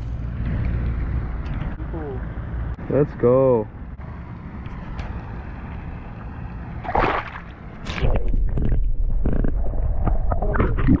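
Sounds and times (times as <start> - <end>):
water splashing and sloshing: 5.0 - 11.0.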